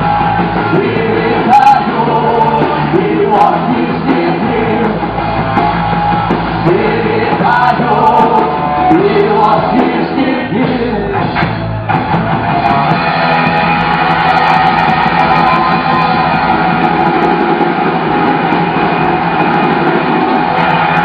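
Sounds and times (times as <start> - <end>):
bass guitar: 0.0 - 21.0
drums: 0.0 - 21.0
electric guitar: 0.0 - 21.0.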